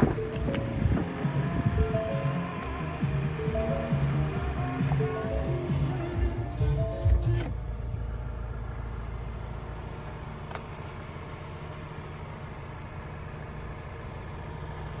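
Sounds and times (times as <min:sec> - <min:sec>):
background music: 0:00.0 - 0:07.5
van engine idling: 0:00.0 - 0:15.0.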